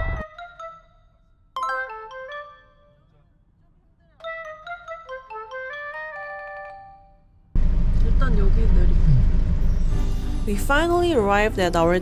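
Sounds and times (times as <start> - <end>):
chiming bell-like melody: 0.3 - 3.0
road and engine noise in car: 7.6 - 12.0.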